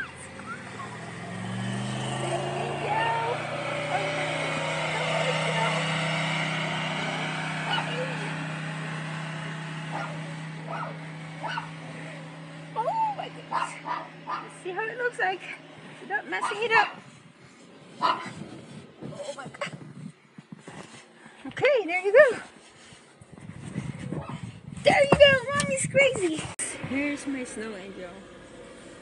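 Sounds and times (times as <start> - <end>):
engine humming: 0.0 - 29.0
dog yipping and barking: 9.9 - 11.7, 13.5 - 14.5, 18.0 - 18.3.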